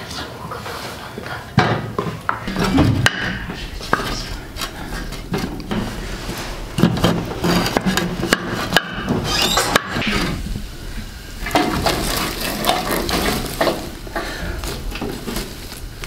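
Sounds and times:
dry twigs rustling and crackling: 0:02.5 - 0:09.7, 0:11.0 - 0:16.0
wooden spatula scraping frying pan: 0:05.3 - 0:10.4, 0:11.4 - 0:15.7.

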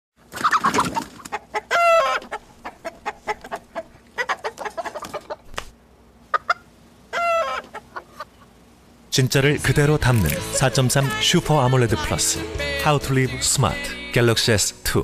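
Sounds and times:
chicken clucking: 0:00.4 - 0:05.5, 0:06.3 - 0:08.6
chicken squawking: 0:00.4 - 0:05.5, 0:06.3 - 0:08.5, 0:10.2 - 0:11.1.

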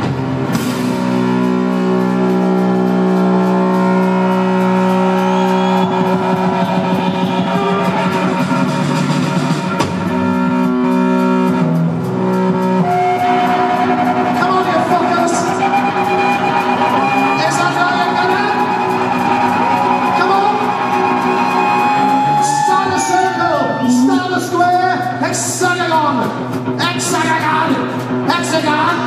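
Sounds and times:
electric guitar chords: 0:00.0 - 0:23.1
bass guitar: 0:00.0 - 0:29.0.

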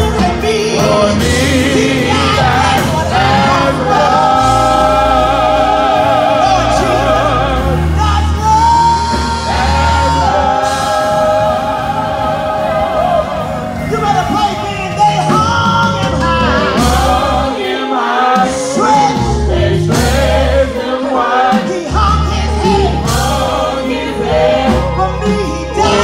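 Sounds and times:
held bass notes: 0:00.0 - 0:17.6
gospel choir singing: 0:00.0 - 0:26.0.

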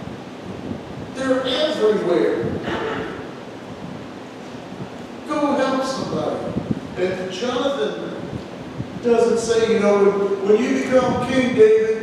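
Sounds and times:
steady room tone hiss: 0:00.0 - 0:12.0.

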